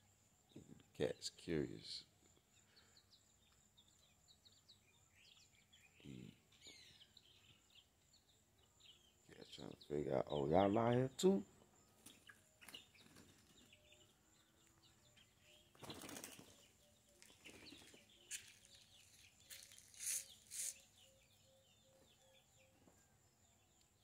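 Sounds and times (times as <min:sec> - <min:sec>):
small birds chirping: 0:00.0 - 0:24.0
rustling: 0:17.2 - 0:20.8.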